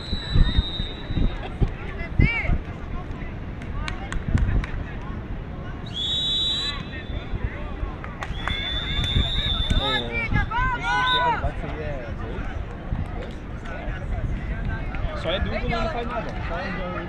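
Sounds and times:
referee's whistle blasts: 0.0s - 1.4s, 5.9s - 7.4s, 8.4s - 10.2s.

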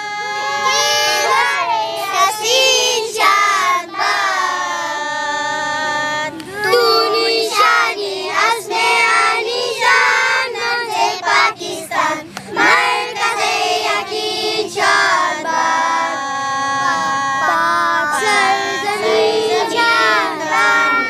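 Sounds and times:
children singing: 0.0s - 21.0s.

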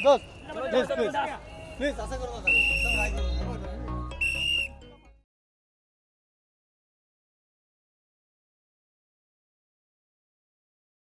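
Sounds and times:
shrill whistle blast: 0.0s - 0.4s, 2.4s - 3.4s, 4.1s - 4.9s
low traffic rumble: 0.0s - 4.9s.

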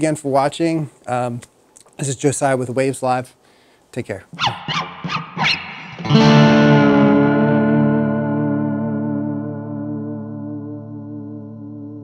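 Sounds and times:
electric guitar chord with chorus: 4.4s - 12.0s.

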